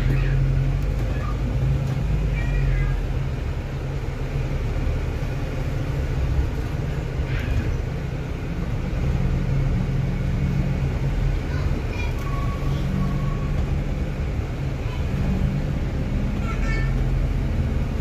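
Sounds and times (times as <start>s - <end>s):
bus engine and road rumble: 0.0s - 18.0s.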